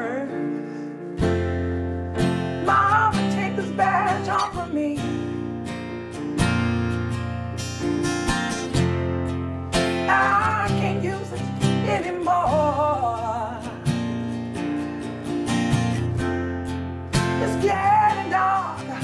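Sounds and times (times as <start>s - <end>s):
sustained piano chords: 0.0s - 11.8s
acoustic guitar strumming: 0.0s - 19.0s.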